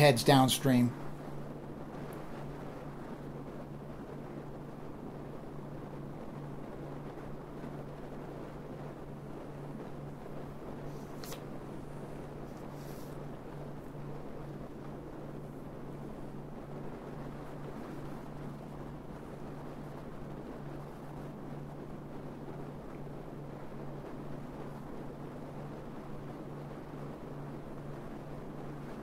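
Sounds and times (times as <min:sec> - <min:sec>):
steady low hum: 0:00.0 - 0:29.0.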